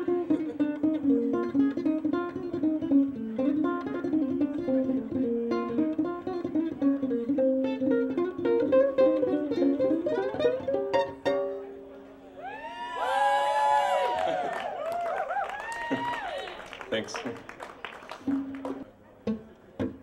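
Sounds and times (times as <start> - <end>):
ukulele picked solo: 0.0 - 16.4, 18.2 - 20.0.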